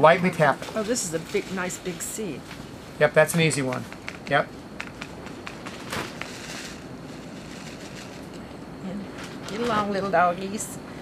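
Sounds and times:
steady rushing background noise: 0.0 - 11.0
finger tapping paper packet: 3.6 - 6.3.

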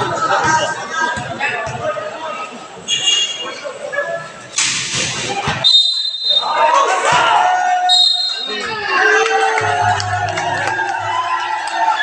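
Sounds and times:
crowd noise burst: 0.0 - 12.0
spectators shouting: 6.2 - 12.0.

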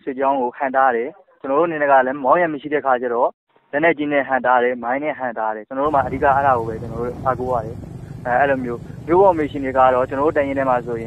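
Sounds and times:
person speaking: 5.6 - 11.0
steady low hum: 5.9 - 11.0.

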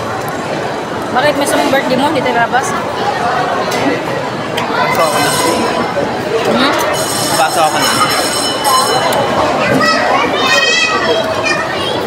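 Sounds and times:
diners chatting: 0.0 - 12.0
child's high-pitched call: 7.9 - 12.0.

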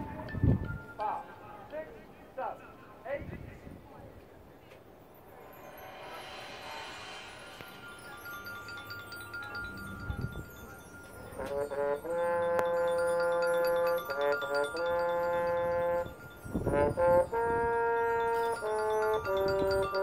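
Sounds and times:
mallet keyboards: 0.0 - 1.8, 5.3 - 20.0.

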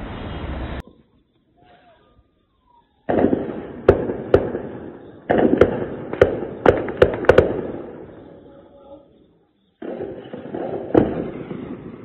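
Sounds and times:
echoing gunshots: 3.1 - 8.7, 9.8 - 12.0.

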